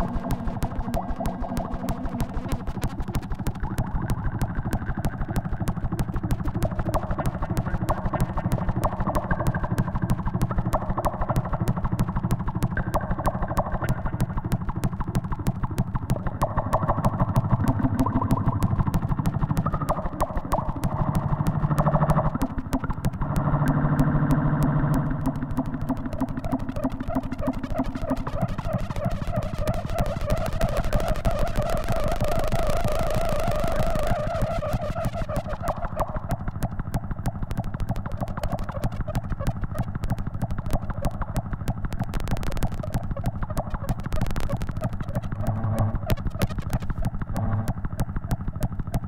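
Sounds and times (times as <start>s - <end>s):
pulsing electronic feedback buzz: 0.0s - 48.9s.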